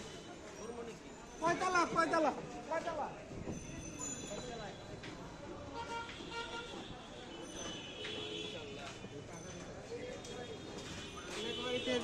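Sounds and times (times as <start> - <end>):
busy market street background: 0.0 - 12.0.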